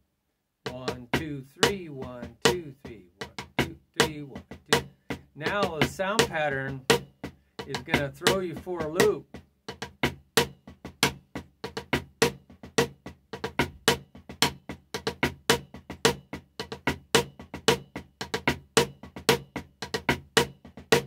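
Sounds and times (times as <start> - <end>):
drumsticks playing rudiments on drum: 0.7 - 4.8.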